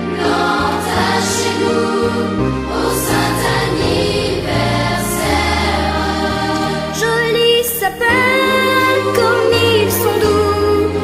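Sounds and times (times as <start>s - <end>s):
choir singing: 0.0s - 10.4s.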